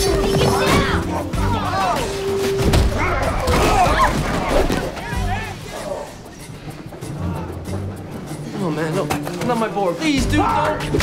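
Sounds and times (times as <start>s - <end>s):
background music: 0.0s - 11.0s
men shouting and grunting: 0.2s - 6.3s, 10.0s - 11.0s.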